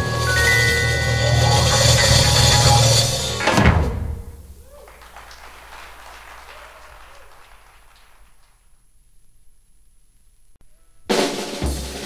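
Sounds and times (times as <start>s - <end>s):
small audience applauding: 4.4s - 8.9s.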